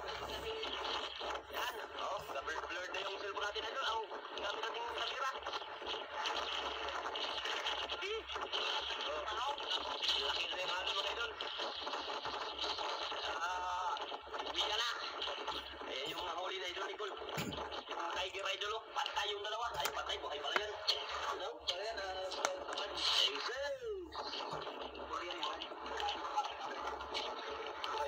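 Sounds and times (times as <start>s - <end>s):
radio-like indistinct talking: 0.0s - 28.0s.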